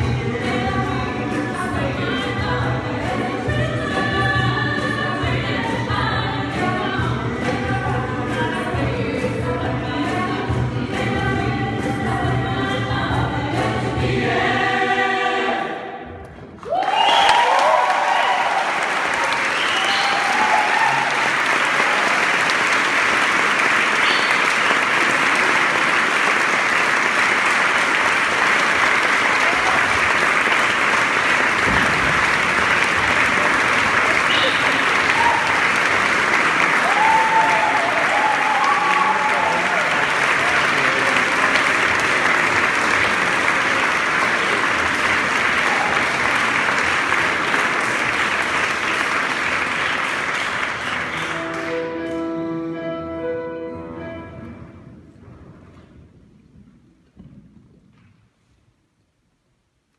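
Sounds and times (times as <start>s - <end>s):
vocal ensemble singing chord: 0.0s - 16.1s
audience applause: 16.6s - 52.1s.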